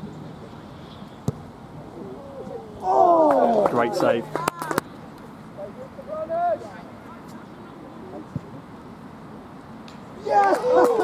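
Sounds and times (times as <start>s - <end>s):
quiet outdoor background: 0.0s - 11.0s.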